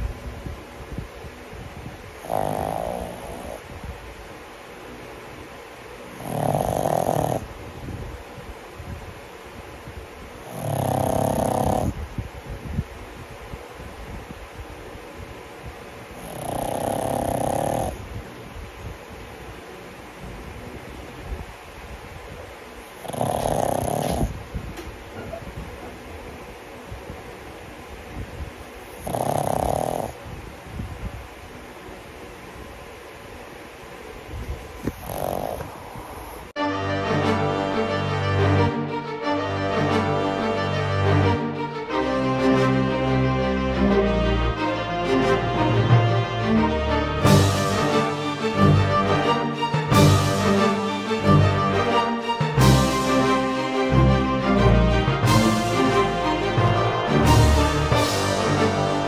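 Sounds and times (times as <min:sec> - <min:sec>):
dog snoring: 0:02.2 - 0:03.6, 0:06.2 - 0:07.5, 0:10.4 - 0:12.0, 0:16.1 - 0:18.1, 0:22.9 - 0:24.4, 0:28.9 - 0:30.2, 0:34.8 - 0:36.5.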